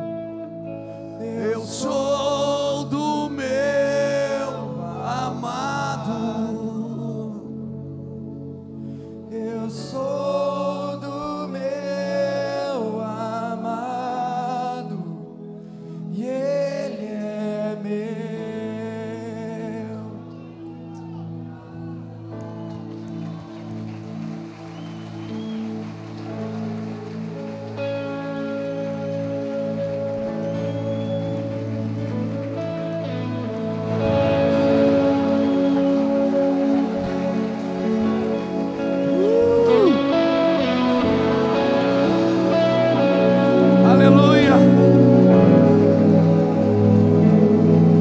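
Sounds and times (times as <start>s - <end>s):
band playing long held chords: 20.3s - 48.0s.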